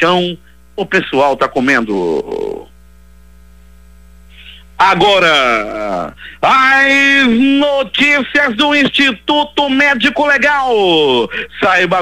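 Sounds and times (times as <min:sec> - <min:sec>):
man speaking: 0:00.0 - 0:02.7, 0:04.4 - 0:12.0
electrical mains hum: 0:00.0 - 0:12.0.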